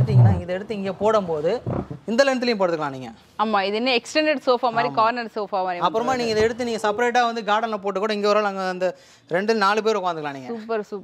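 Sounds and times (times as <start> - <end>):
person talking: 4.7 - 5.1.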